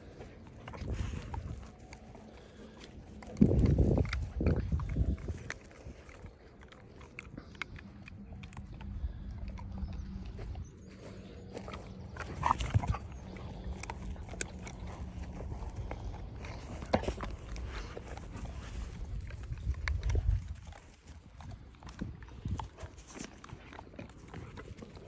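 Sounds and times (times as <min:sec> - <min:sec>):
dogs sniffing in grass: 0:00.0 - 0:25.0.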